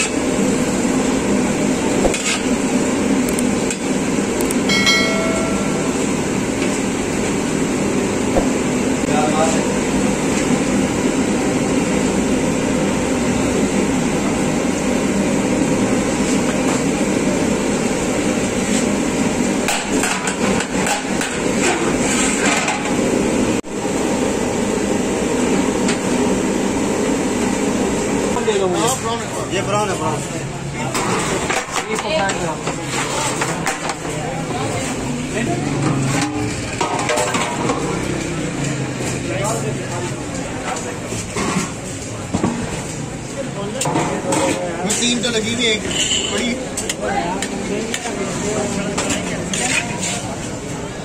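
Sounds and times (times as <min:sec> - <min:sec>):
stove fire burning: 0:00.0 - 0:28.4.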